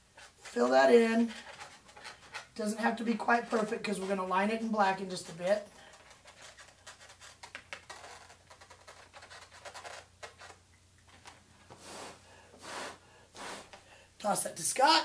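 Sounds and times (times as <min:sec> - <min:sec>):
marker scratching on balloon: 0:00.1 - 0:04.6, 0:06.0 - 0:10.6, 0:11.7 - 0:13.8.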